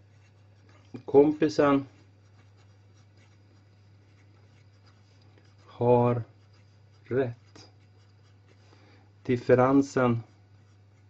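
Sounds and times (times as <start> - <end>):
pen scratching on paper: 0.0 - 11.0
steady low hum: 0.0 - 11.0.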